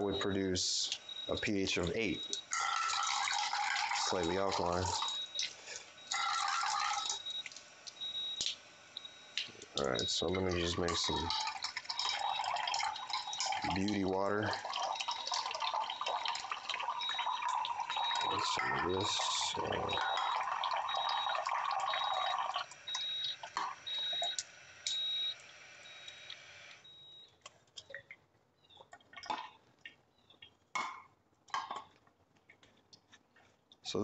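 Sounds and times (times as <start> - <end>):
machine beeping: 0.0 - 28.1
water running into a glass: 1.8 - 7.3, 9.8 - 24.4.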